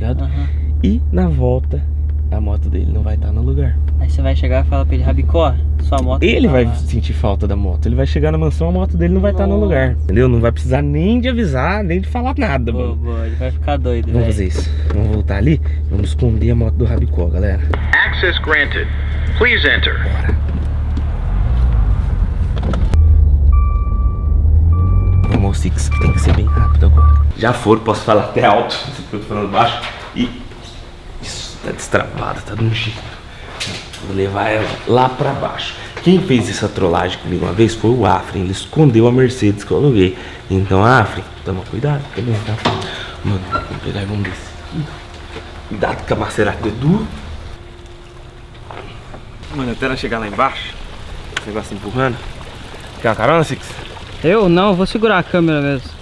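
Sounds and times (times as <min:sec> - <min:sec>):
car engine low rumble: 0:00.0 - 0:56.0
faint steady hum: 0:00.0 - 0:56.0
motorcycle tyres rolling: 0:20.1 - 0:56.0
electronic warning beeps: 0:23.0 - 0:27.4.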